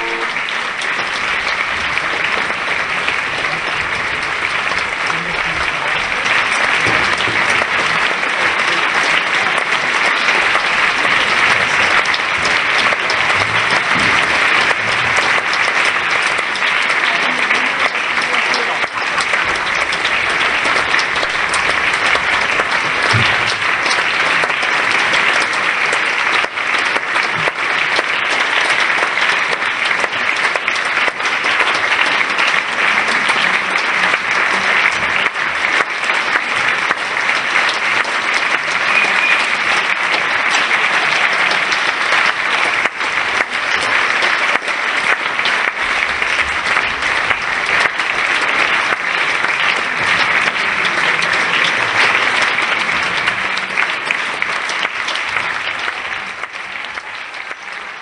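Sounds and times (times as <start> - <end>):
crowd applause: 0.0 - 58.0.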